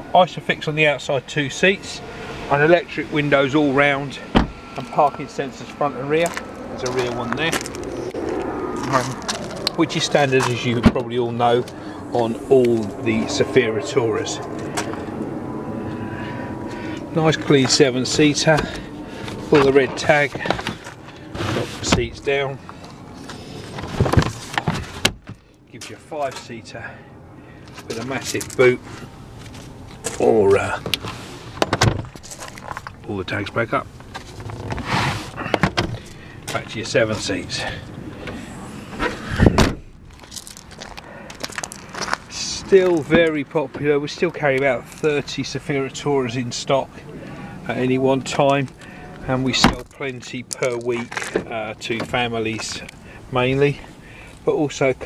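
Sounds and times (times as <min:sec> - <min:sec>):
distant engine rushing: 0:00.0 - 0:23.9, 0:33.1 - 0:40.0, 0:40.9 - 0:50.4
faint high whine: 0:00.2 - 0:20.5
tailgate thump: 0:04.3 - 0:04.6.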